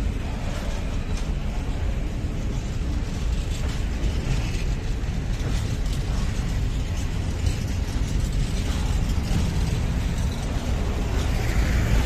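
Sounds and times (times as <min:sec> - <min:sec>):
freight train wheels rumbling on track: 0:00.0 - 0:12.0
metallic clatter: 0:00.0 - 0:12.0.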